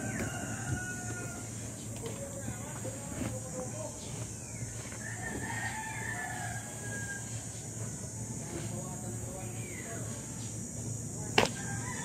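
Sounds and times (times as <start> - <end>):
rooster crowing: 0.0 - 1.7, 4.9 - 7.6, 11.5 - 12.0.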